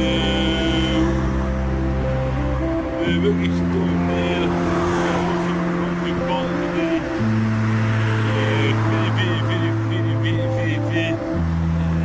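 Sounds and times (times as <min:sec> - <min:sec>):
background music with held notes: 0:00.0 - 0:12.0
car passing: 0:00.0 - 0:12.0.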